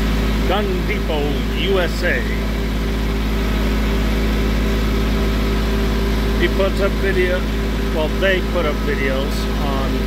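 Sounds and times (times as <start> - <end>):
tractor engine droning: 0.0 - 10.0.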